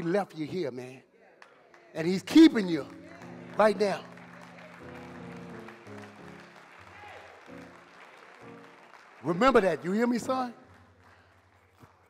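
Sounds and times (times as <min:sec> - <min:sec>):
faint applause: 0:01.4 - 0:12.0
soft keyboard chords: 0:02.6 - 0:10.5.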